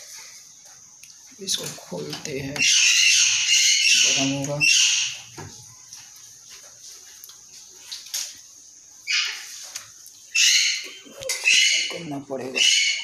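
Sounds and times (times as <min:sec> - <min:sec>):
bird squawking: 0:02.5 - 0:05.2, 0:10.3 - 0:13.0.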